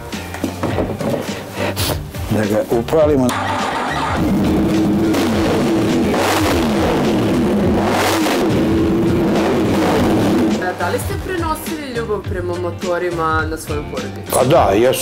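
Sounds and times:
motorcycle engine revving: 3.3s - 12.4s.

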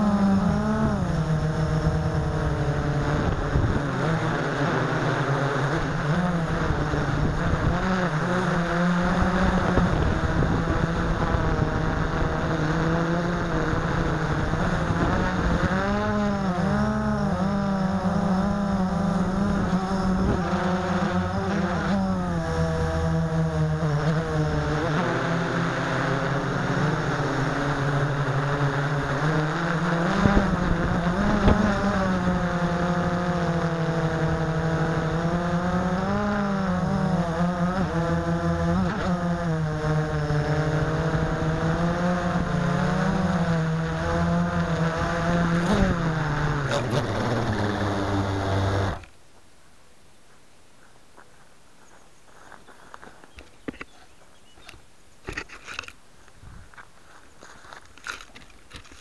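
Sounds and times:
quadcopter motors buzzing: 0.0s - 49.1s, 57.6s - 59.0s.

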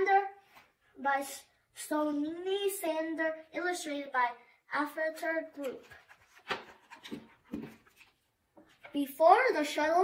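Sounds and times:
book page rustling: 5.5s - 9.1s.

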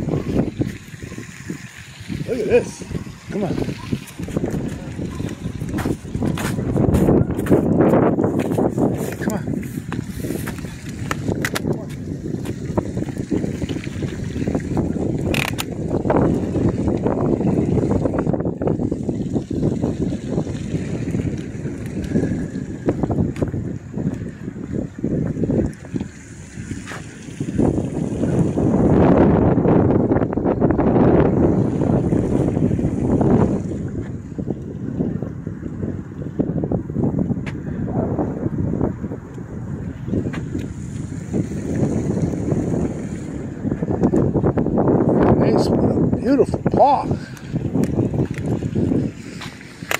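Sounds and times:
wind buffeting microphone: 0.0s - 49.9s.

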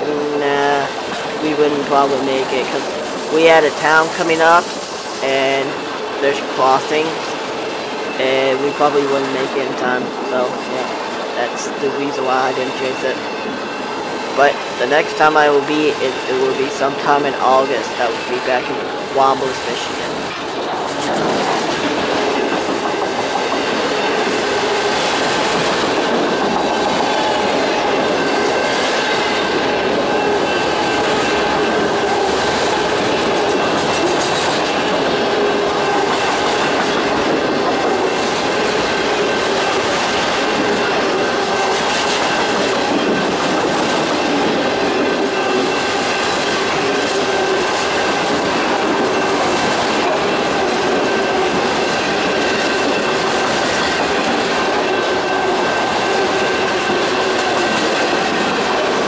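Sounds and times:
train wheels clattering on rail: 20.1s - 59.0s.

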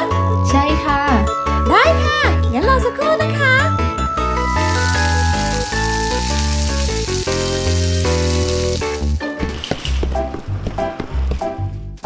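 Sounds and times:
frying sizzle: 4.2s - 9.7s.

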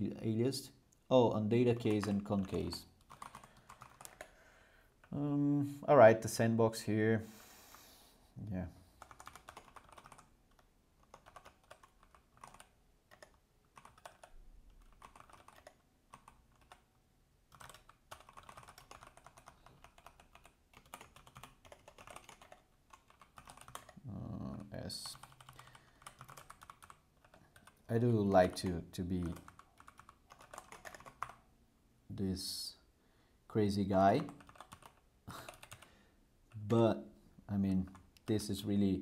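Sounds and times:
keyboard typing clicks: 25.1s - 27.8s, 34.2s - 35.9s.

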